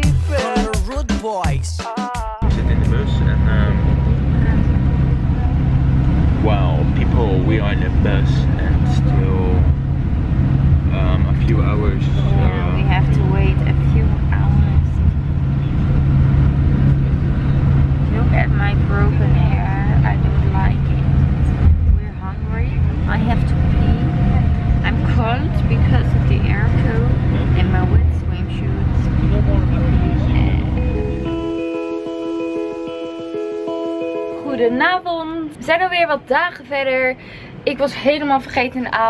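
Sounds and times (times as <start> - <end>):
people's voices: 0.0 - 4.8, 6.4 - 9.8, 10.9 - 16.0, 16.6 - 31.0, 34.4 - 39.0
bus engine and road noise: 2.4 - 39.0.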